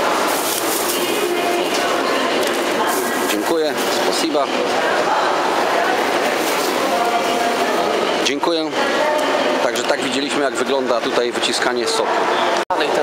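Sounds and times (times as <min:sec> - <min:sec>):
hubbub of voices: 0:00.0 - 0:13.0.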